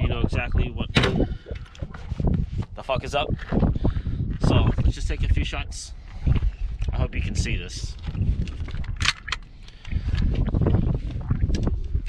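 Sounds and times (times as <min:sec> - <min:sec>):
microphone handling rumble: 0:00.0 - 0:12.0.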